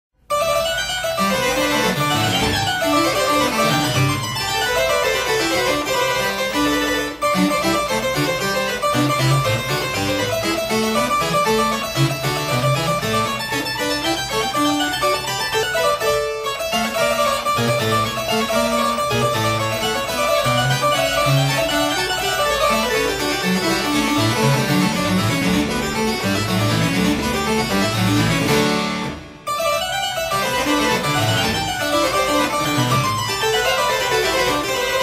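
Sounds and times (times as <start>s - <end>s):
fast harpsichord piece: 0.2s - 35.0s.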